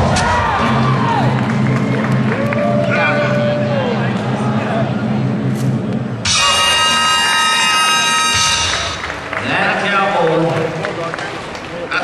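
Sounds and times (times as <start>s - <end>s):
music: 0.0s - 9.4s
arena background noise: 0.0s - 12.0s
loud held chord-like tone: 6.2s - 9.1s.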